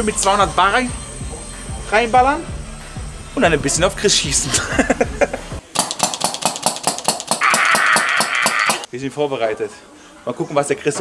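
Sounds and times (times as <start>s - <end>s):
paintball marker firing rapidly: 5.7s - 8.9s.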